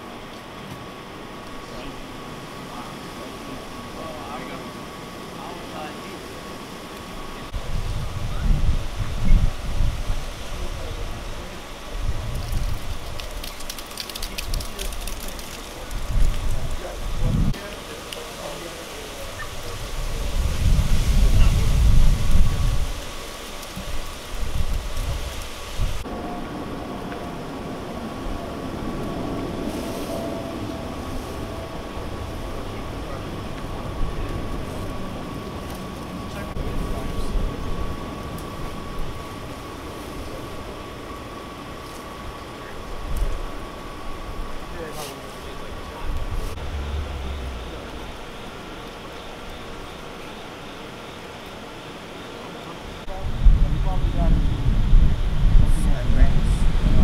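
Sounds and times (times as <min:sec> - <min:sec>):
low rumbles: 0:45.6 - 0:50.1.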